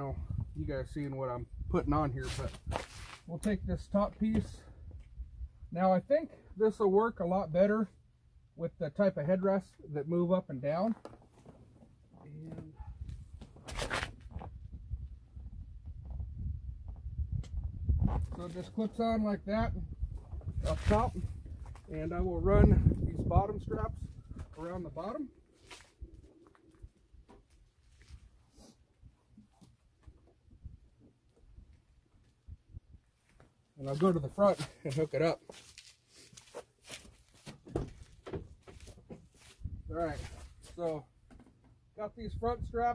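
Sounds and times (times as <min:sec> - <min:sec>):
rustling of straps and fabric: 0:02.2 - 0:03.4, 0:10.9 - 0:14.7, 0:20.1 - 0:22.1, 0:24.0 - 0:30.1, 0:33.2 - 0:41.0
dull low bumps: 0:12.2 - 0:25.0.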